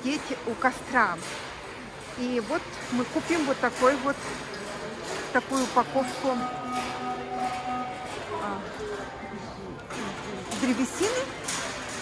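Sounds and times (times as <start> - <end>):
large store background noise: 0.0 - 12.0.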